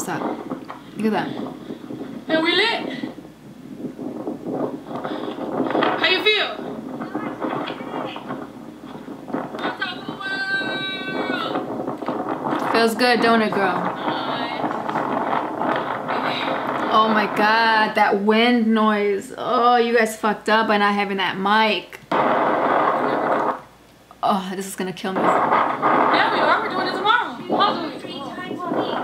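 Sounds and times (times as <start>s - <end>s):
wind buffeting microphone: 0.0s - 23.8s, 24.4s - 29.0s.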